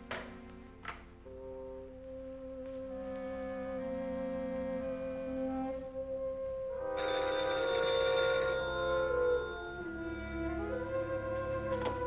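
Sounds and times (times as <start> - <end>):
orchestral film music: 0.0 - 12.0
telephone bell ringing: 7.0 - 9.8.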